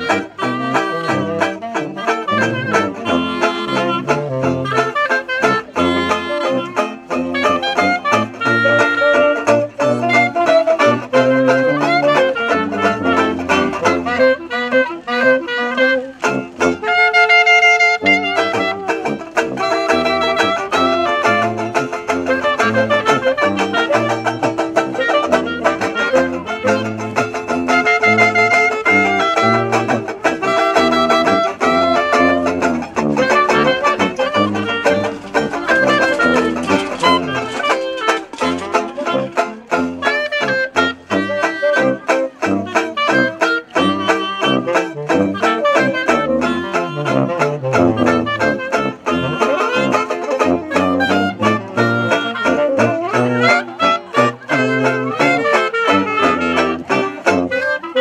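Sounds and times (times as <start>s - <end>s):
sousaphone bass line: 0.0s - 16.9s, 18.0s - 57.6s
banjo strumming chords: 0.0s - 58.0s
clarinet: 0.0s - 58.0s
saxophone: 0.0s - 58.0s.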